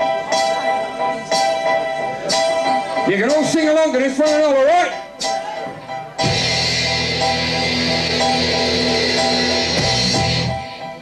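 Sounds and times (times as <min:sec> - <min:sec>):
rock band playing held chord: 0:00.0 - 0:11.0.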